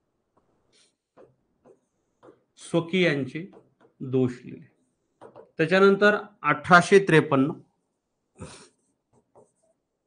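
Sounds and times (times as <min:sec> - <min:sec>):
stylus scratching on screen: 0:00.4 - 0:04.1, 0:08.7 - 0:10.0.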